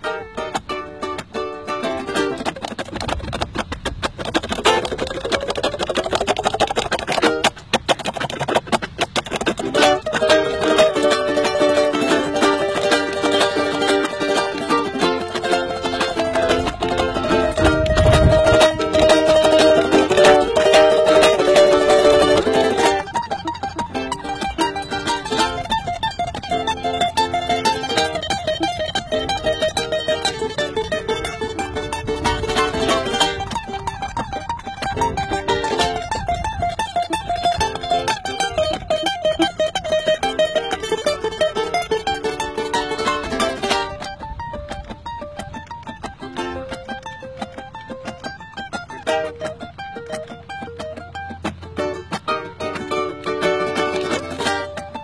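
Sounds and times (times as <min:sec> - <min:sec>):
ukuleles playing: 0:00.0 - 0:55.0.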